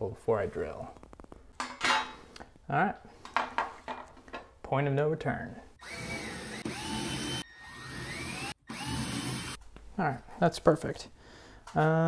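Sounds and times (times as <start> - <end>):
cordless drill boring into drywall: 5.8 - 9.6.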